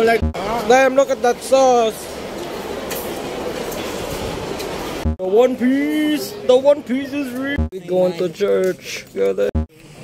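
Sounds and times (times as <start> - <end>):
indoor public space background noise: 0.0 - 10.0.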